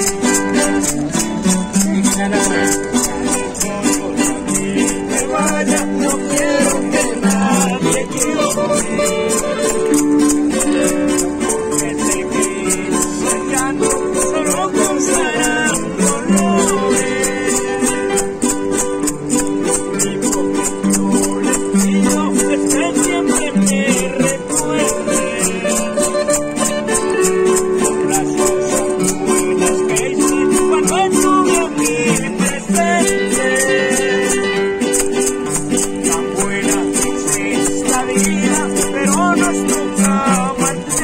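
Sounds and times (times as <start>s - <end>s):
acoustic guitars playing: 0.0s - 41.0s
high rattling beat: 0.0s - 41.0s
man singing: 0.0s - 41.0s.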